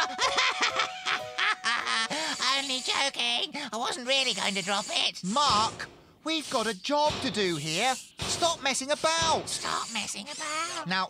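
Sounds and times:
cartoon character giggling: 0.0s - 3.0s.

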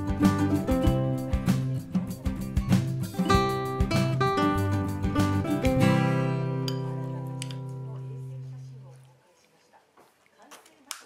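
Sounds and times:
acoustic guitar chords: 0.0s - 8.5s.

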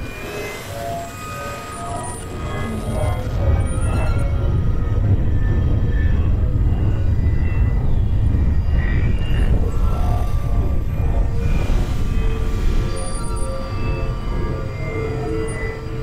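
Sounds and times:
low synthesizer drone: 0.0s - 16.0s
scattered synth tones: 0.0s - 16.0s.

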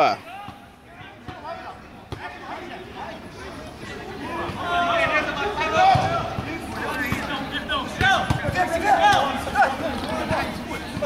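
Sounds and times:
voices calling out: 0.0s - 11.0s
football being kicked: 8.0s - 9.3s.

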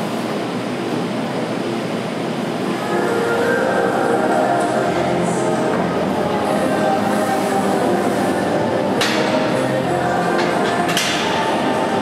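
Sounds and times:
music: 2.8s - 12.0s.

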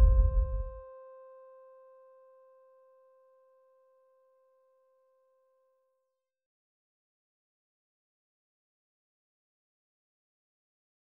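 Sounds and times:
piano note ringing: 0.0s - 0.8s.

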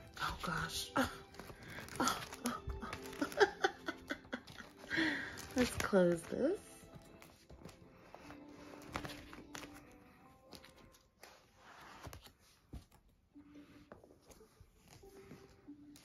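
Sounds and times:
faint background music: 0.0s - 16.0s
plastic page sleeves rustling: 0.1s - 16.0s.

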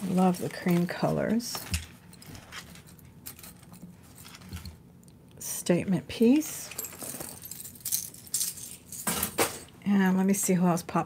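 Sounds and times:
jewelry jangling and clinking: 0.6s - 4.8s, 6.5s - 9.4s.

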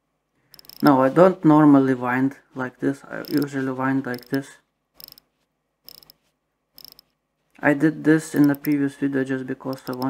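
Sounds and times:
watch winding ratchet clicks: 0.5s - 0.9s, 3.2s - 3.5s, 4.1s - 4.4s, 5.0s - 5.3s, 5.9s - 6.2s, 6.8s - 7.1s, 8.4s - 8.8s, 9.7s - 10.0s.

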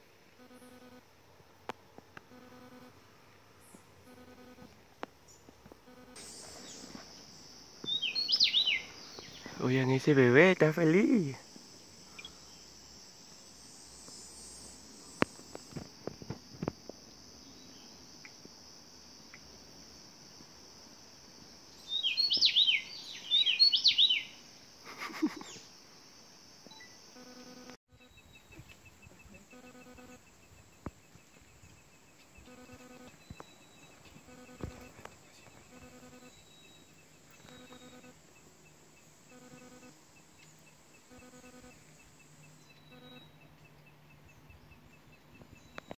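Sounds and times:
high insect drone: 0.0s - 46.0s.

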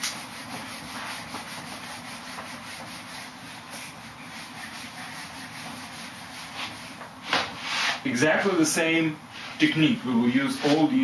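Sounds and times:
eraser rubbing on whiteboard: 0.1s - 8.1s, 10.4s - 11.0s.

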